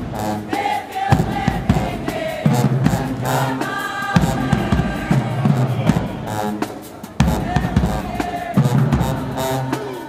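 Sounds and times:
brass horns holding notes: 0.0s - 10.0s
regular drum beat: 0.0s - 10.0s.

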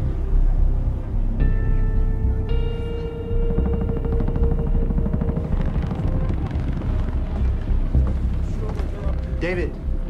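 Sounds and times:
helicopter rotors beating: 3.0s - 9.8s.

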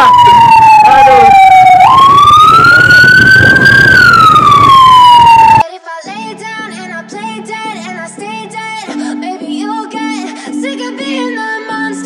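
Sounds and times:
motorcycle siren wailing: 0.0s - 5.6s.

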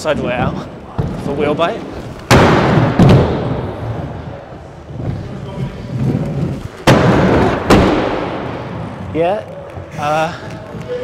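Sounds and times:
skate wheels rolling over wood: 0.1s - 11.0s.

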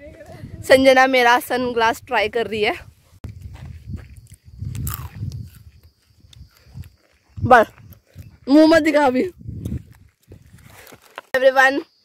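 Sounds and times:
wind buffeting microphone: 0.0s - 10.9s.

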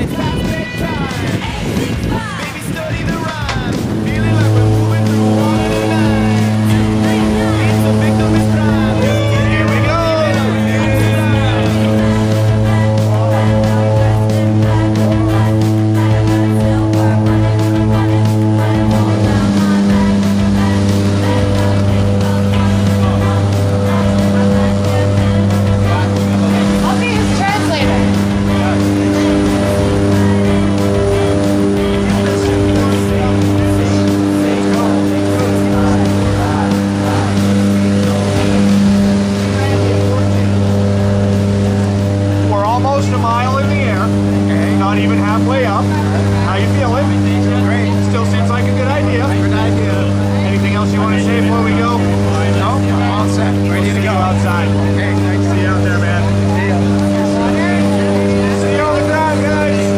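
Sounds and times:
people talking: 0.0s - 59.9s
propeller aircraft engines droning: 0.0s - 59.9s.

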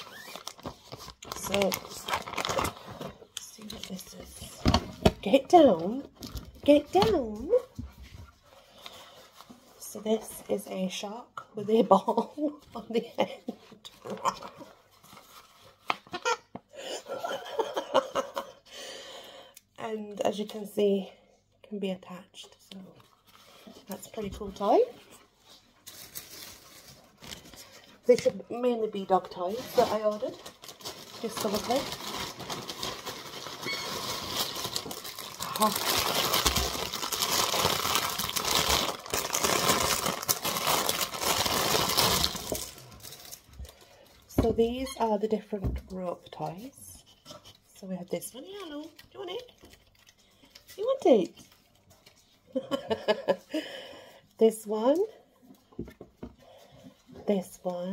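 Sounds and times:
plastic mailer bag crinkling: 0.0s - 4.6s, 25.7s - 44.1s.

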